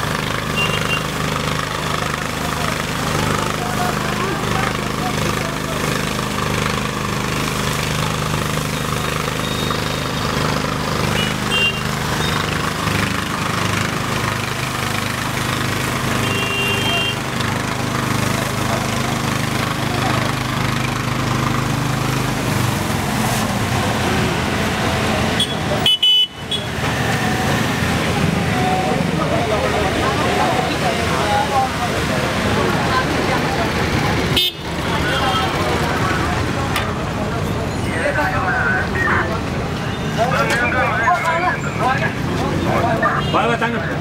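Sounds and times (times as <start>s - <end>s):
people talking: 0.0s - 26.0s, 26.7s - 44.0s
engine hum: 0.0s - 44.0s
vehicle horn toots: 0.5s - 1.1s, 11.1s - 12.4s, 16.2s - 17.3s, 25.4s - 26.7s, 34.4s - 35.5s.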